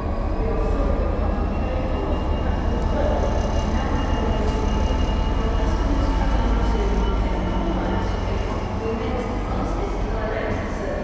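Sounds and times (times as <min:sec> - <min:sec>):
train wheels on rails: 0:00.0 - 0:10.9
freight train engine rumble: 0:00.0 - 0:11.0.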